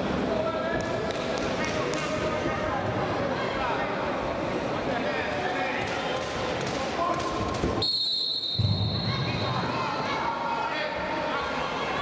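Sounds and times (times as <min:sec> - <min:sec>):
crowd calling out and chattering: 0:00.0 - 0:12.0.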